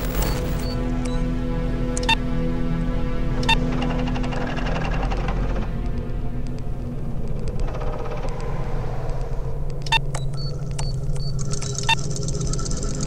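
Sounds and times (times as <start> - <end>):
low rumbling drone: 0.0 - 13.0
sharp clicks: 3.4 - 13.0
sci-fi computer interface effects: 7.5 - 13.0.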